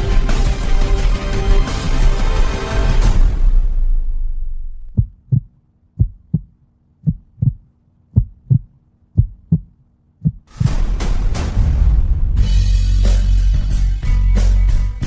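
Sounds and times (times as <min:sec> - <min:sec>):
dense loud music: 0:00.0 - 0:04.9, 0:10.5 - 0:15.0
heartbeat double thump: 0:04.8 - 0:10.8.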